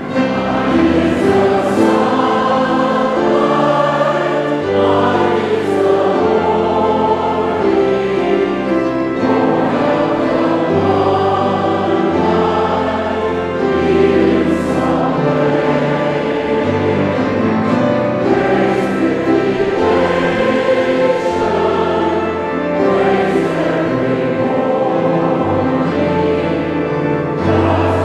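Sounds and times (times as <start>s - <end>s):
congregation and choir singing: 0.0s - 28.0s
instrumental accompaniment: 0.0s - 28.0s.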